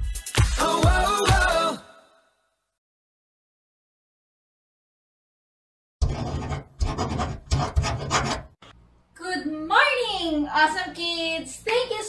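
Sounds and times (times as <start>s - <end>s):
scratchy rasping strokes: 6.0s - 8.6s.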